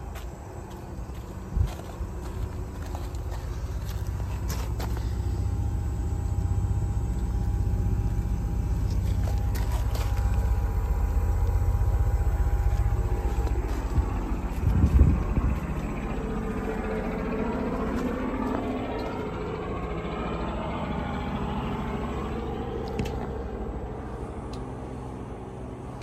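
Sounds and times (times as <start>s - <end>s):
heat pump humming: 0.0s - 26.0s
loud low rumble: 0.4s - 26.0s.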